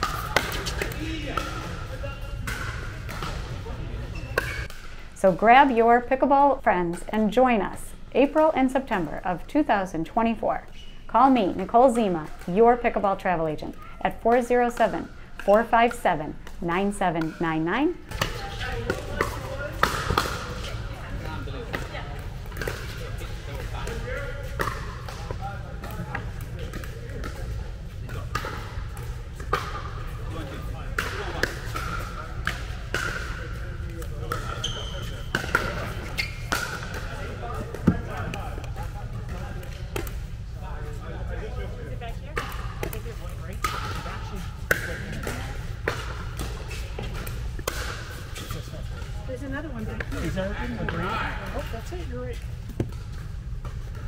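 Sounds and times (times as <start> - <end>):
paddles hitting ball: 0.0 - 1.8, 18.1 - 20.7, 21.6 - 30.0, 30.9 - 40.3, 42.3 - 48.6
ball bouncing on hard court: 0.0 - 4.8, 14.3 - 17.4, 18.0 - 30.0, 31.0 - 40.2, 42.3 - 48.5.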